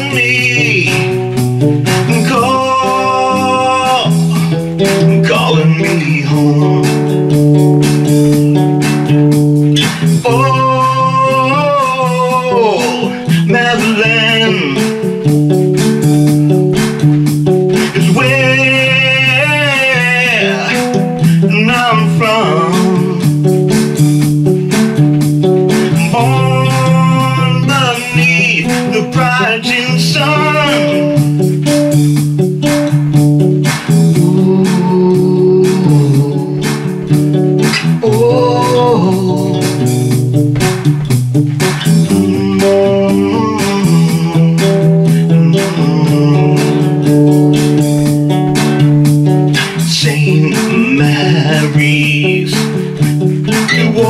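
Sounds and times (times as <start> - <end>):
folk guitar playing: 0.0 - 54.0.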